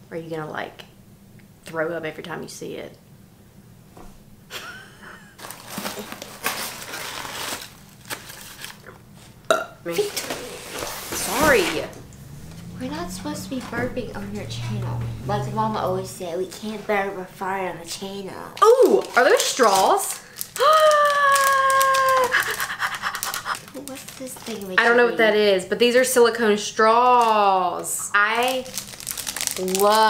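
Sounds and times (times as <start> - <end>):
person burping: 9.5 - 9.8
woman's high ooh: 20.5 - 23.1
rapid breathy crackling: 22.2 - 24.2.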